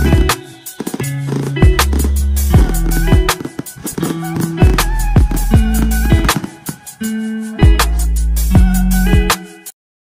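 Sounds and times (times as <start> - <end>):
music with deep bass and drum beat: 0.0 - 9.5.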